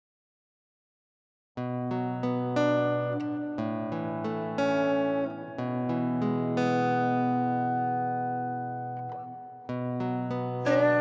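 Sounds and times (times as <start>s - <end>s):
acoustic guitar chord ringing: 1.6s - 11.0s.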